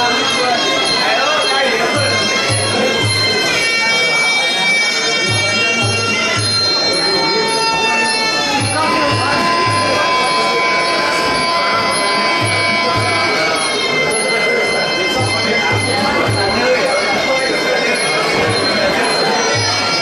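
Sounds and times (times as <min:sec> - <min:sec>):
reedy oboe holding nasal notes: 0:04.8 - 0:14.4.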